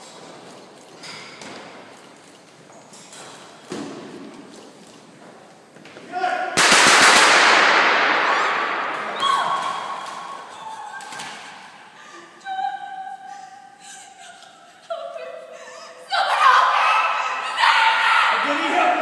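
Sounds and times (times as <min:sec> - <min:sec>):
automatic gunfire: 0:06.6 - 0:09.2
people crying out: 0:14.9 - 0:19.0.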